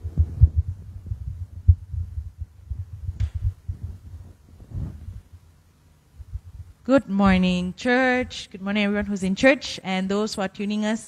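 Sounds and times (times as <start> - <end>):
microphone handling thumps: 0.0 - 5.4
microphone rustle: 0.0 - 5.5.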